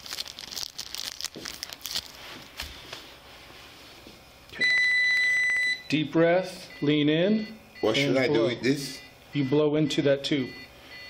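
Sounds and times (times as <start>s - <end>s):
high-pitched instrument beep: 4.6s - 6.0s.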